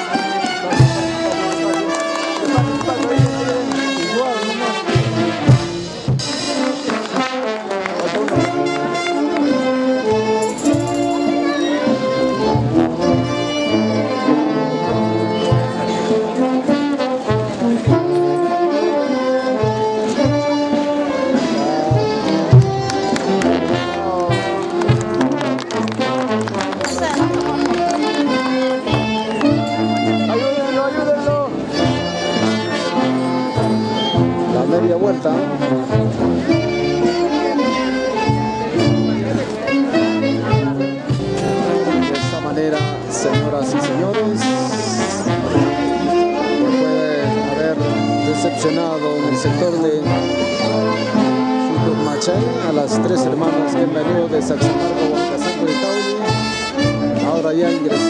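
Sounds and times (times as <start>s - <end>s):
brass band playing: 0.0s - 58.0s
crowd voices: 0.0s - 58.0s.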